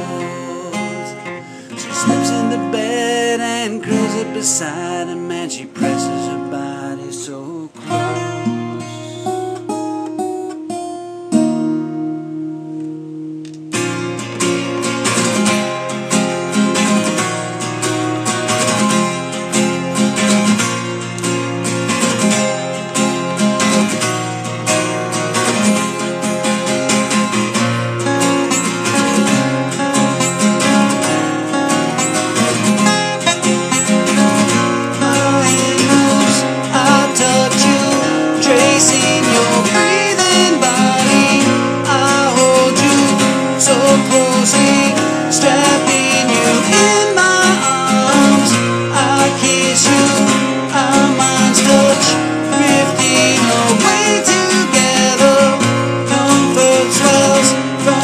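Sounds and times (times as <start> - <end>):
acoustic guitar strumming: 0.0 - 58.0.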